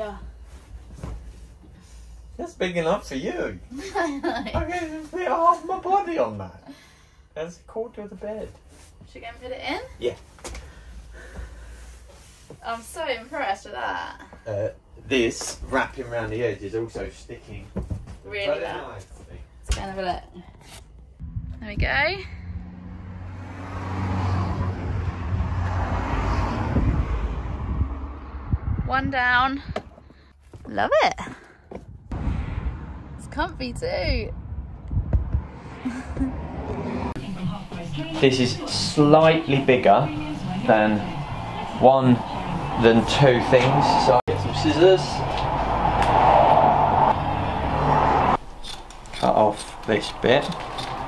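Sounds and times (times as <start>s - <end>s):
low hum: 21.2s - 29.4s, 31.9s - 51.0s
motor vehicle passing: 21.2s - 30.2s, 32.1s - 51.0s
steady rushing noise: 32.1s - 51.0s.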